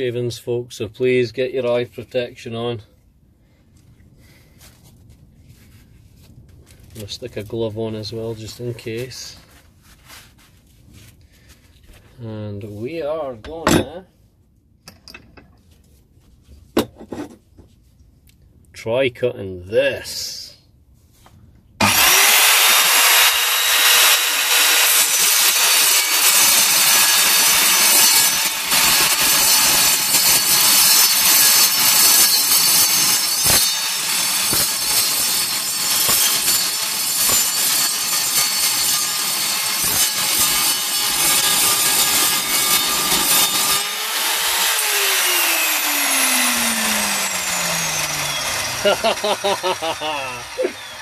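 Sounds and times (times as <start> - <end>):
saw cutting steel tube: 21.8 - 51.0
saw motor whine: 21.8 - 51.0.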